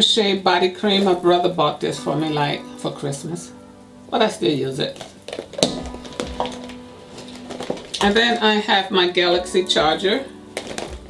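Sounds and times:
soft background music: 0.0s - 11.0s
clicks and knocks rummaging in handbag: 4.9s - 8.4s, 10.6s - 11.0s.

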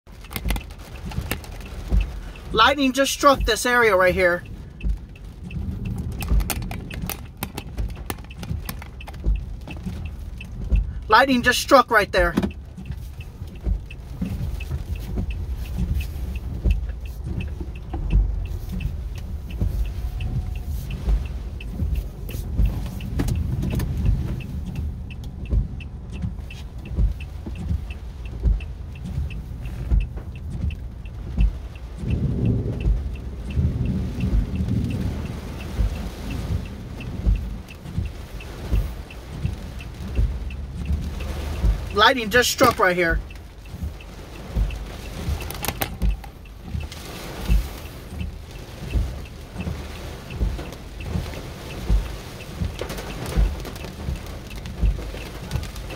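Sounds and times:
car engine idling: 0.1s - 55.9s
fast faint ticking: 0.1s - 55.9s
rain hitting glass: 0.1s - 55.9s
windshield wipers sweeping: 0.1s - 55.9s.

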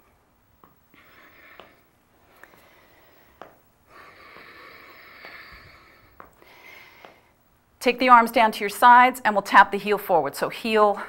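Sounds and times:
person breathing out: 0.9s - 7.3s.

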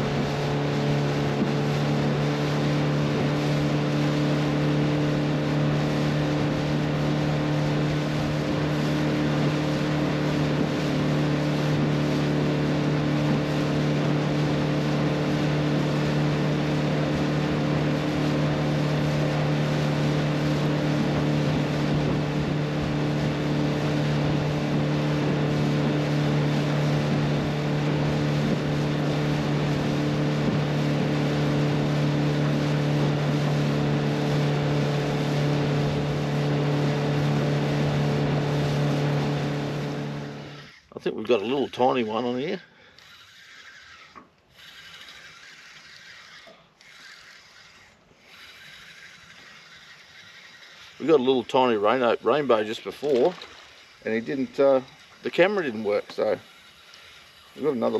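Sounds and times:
water rushing past hull: 0.0s - 40.4s
outboard motor running: 0.0s - 57.9s.

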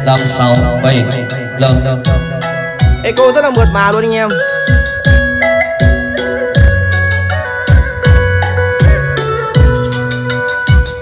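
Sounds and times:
electronic music through speaker: 0.0s - 11.0s.

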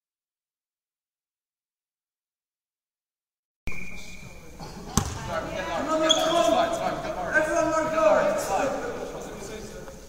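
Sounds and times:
players' voices: 3.7s - 10.0s
handball bouncing on wooden floor: 5.0s - 5.2s.

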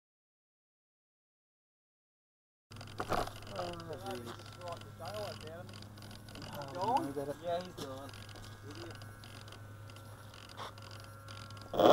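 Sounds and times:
steady low hum: 2.7s - 11.9s.

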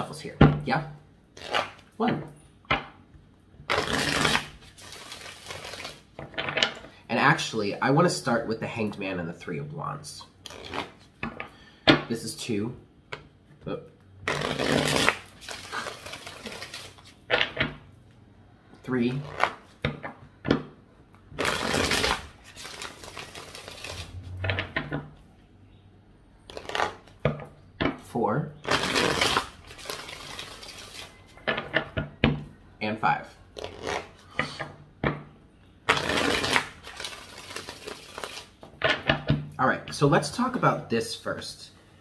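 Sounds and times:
cards being shuffled: 3.7s - 6.9s, 10.4s - 11.5s, 14.2s - 17.8s, 19.2s - 20.0s, 21.4s - 25.0s, 26.5s - 27.2s, 28.6s - 32.0s, 33.6s - 34.8s, 35.9s - 39.3s
faint rustling of cards: 14.0s - 17.3s.

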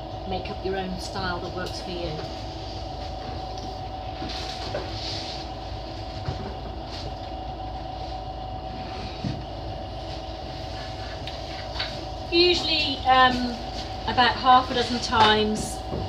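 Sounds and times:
pottery wheel motor humming: 0.0s - 16.0s.

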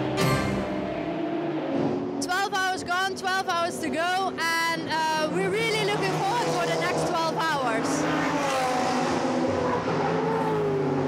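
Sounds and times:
race car engine humming: 0.0s - 11.0s.

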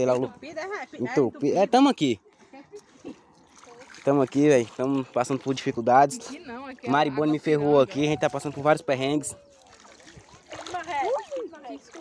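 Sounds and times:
feet splashing in muddy water: 2.2s - 12.0s.

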